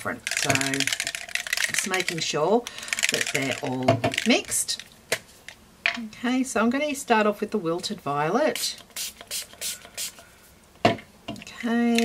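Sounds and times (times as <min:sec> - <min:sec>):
spray bottle hissing: 0:08.9 - 0:10.2.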